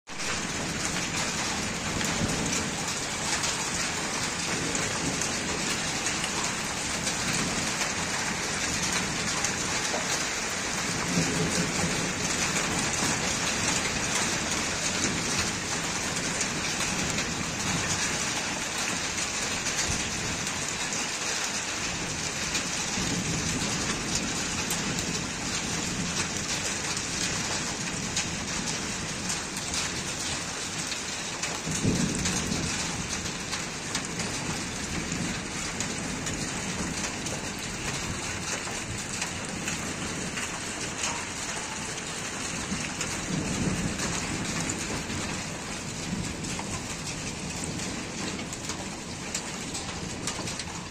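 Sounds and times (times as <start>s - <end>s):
rain falling: 0.1s - 50.9s
thunder rolling: 0.2s - 18.2s, 42.5s - 50.9s.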